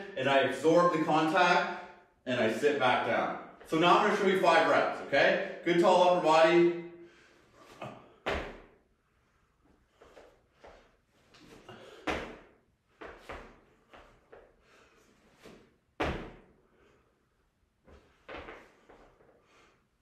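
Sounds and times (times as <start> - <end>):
feet thudding on gym floor: 7.8 - 8.8, 10.0 - 14.5, 15.4 - 16.5.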